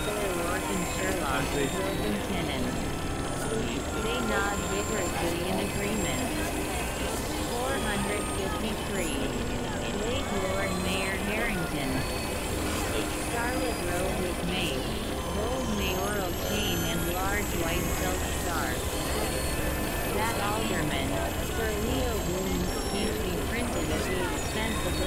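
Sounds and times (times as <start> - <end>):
low rumble drone: 0.0 - 25.0
warbling electronic tones: 0.0 - 25.0.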